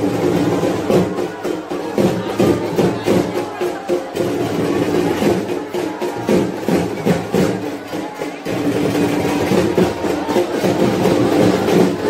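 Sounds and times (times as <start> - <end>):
crowd voices: 0.0 - 12.0
drums beating fast rhythm: 0.0 - 12.0.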